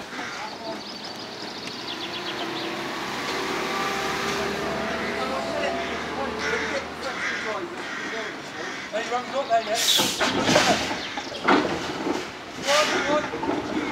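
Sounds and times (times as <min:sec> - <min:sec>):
steam roller rumbling over bridge: 0:00.0 - 0:13.9.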